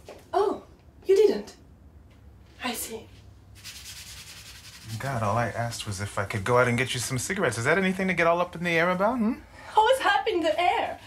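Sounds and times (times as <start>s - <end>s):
sponge scrubbing a dish: 3.6s - 7.1s.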